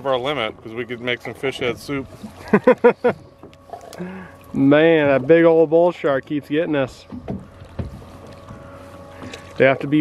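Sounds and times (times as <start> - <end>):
wind and water against hull: 0.0 - 10.0
faint steady hum: 0.4 - 10.0.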